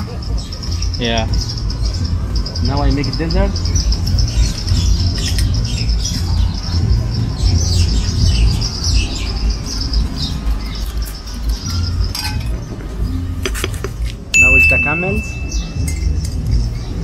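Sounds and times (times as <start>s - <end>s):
low rumble: 0.0s - 14.4s
birds chirping: 0.0s - 17.0s.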